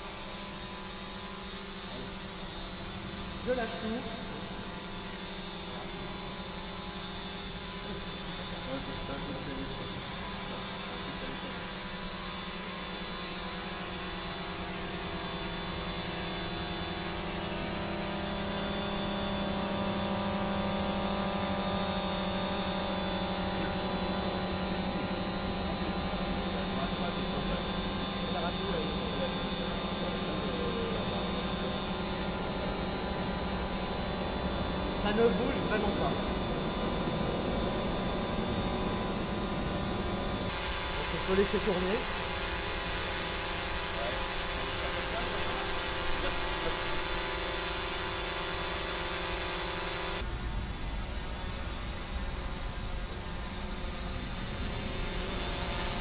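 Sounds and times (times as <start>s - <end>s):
drone propellers whining: 0.0s - 56.0s.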